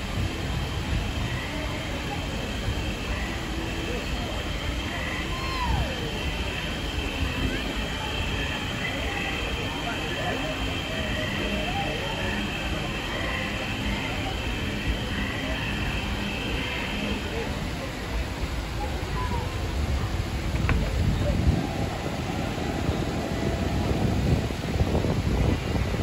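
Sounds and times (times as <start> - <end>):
crowd talking: 0.0 - 26.0
traffic rumble: 0.0 - 26.0.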